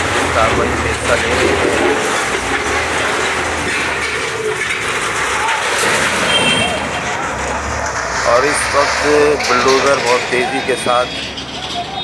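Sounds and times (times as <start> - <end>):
people's voices: 0.0 - 12.0
wheel loader engine straining: 0.0 - 12.0.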